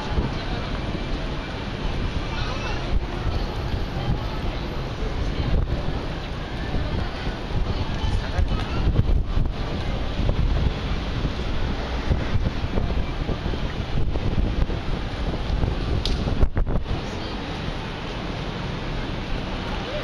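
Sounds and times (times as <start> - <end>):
crowd hubbub: 0.0 - 20.0
passers-by talking: 0.0 - 20.0
wind buffeting microphone: 0.0 - 20.0.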